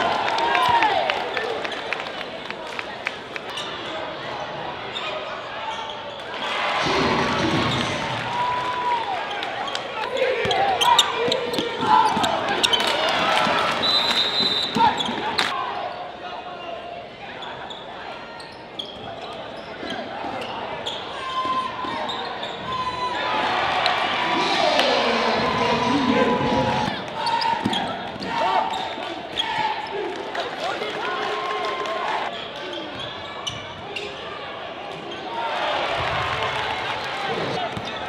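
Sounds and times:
crowd calling and shouting: 0:00.0 - 0:38.0.

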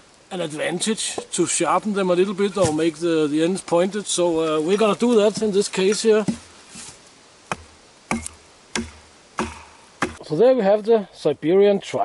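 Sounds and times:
hatchet chopping wood: 0:05.3 - 0:06.5, 0:07.5 - 0:10.2.

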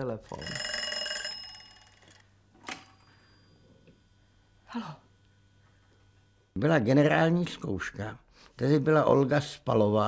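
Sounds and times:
telephone bell ringing: 0:00.3 - 0:04.4.

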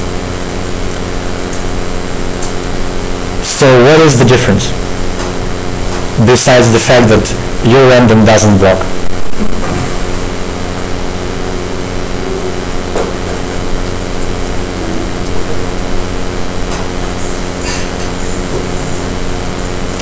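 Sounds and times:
low room hum: 0:00.0 - 0:20.0.

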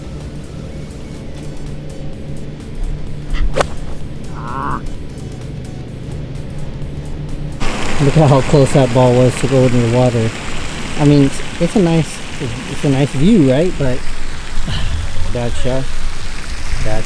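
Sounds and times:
background music: 0:00.0 - 0:13.3
golf club striking ball: 0:03.4 - 0:04.0.

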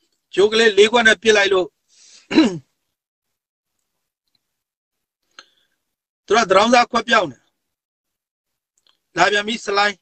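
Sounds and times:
man breathing: 0:01.9 - 0:02.3, 0:05.2 - 0:05.9.

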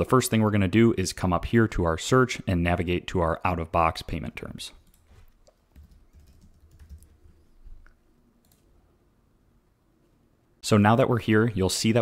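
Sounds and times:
typing on computer keyboard: 0:05.7 - 0:07.2.

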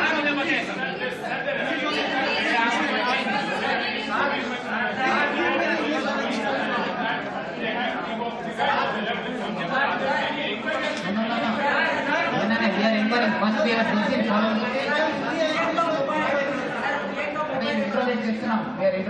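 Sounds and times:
crowd chatter in echoing hall: 0:00.0 - 0:19.0.

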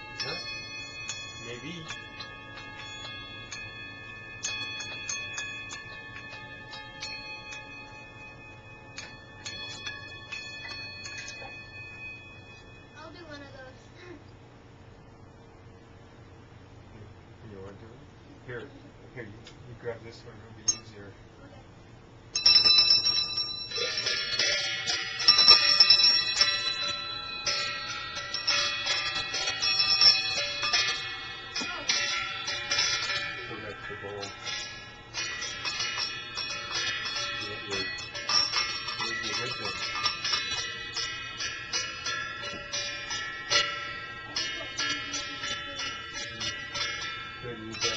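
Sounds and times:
small metal bells struck: 0:00.0 - 0:13.7, 0:20.6 - 0:21.1, 0:22.3 - 0:47.9.

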